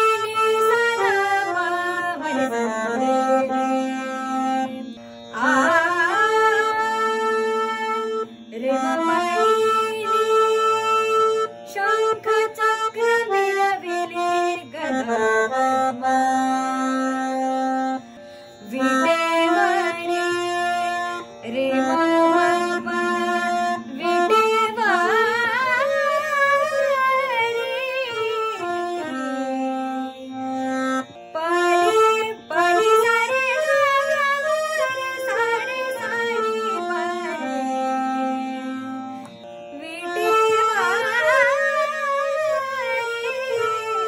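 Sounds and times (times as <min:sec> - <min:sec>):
person singing: 0:00.0 - 0:17.0, 0:18.6 - 0:29.9, 0:39.7 - 0:44.0
harmonium melody: 0:00.0 - 0:44.0.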